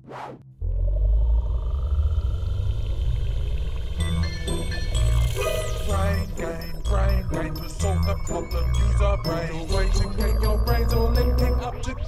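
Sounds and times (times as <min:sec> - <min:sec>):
deep steady rumble: 0:00.5 - 0:12.0
faint rising whine: 0:00.6 - 0:07.0.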